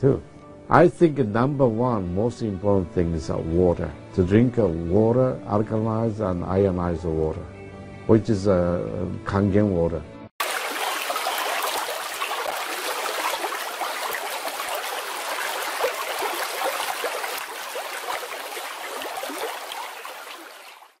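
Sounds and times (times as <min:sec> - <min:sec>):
running water trickling: 0:10.4 - 0:21.0.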